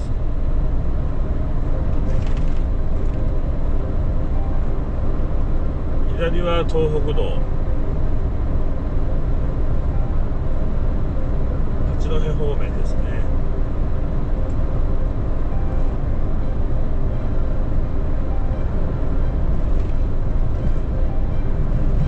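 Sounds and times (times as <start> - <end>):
road noise: 0.0 - 22.0
truck engine rumble: 0.0 - 22.0.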